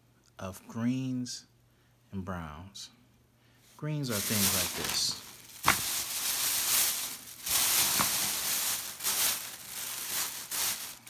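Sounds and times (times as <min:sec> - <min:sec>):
plastic bag crinkling: 0:04.0 - 0:11.0
sharp snap of plastic bag: 0:05.6 - 0:06.0.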